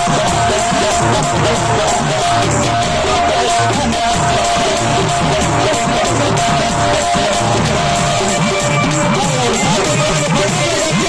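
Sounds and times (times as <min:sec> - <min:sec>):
barrel drum: 0:00.0 - 0:11.0
electronic keyboard folk music: 0:00.0 - 0:11.0.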